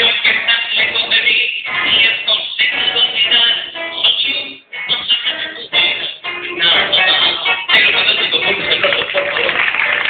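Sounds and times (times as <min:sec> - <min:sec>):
man singing a tango: 0:00.0 - 0:09.5
acoustic guitar: 0:00.0 - 0:10.0.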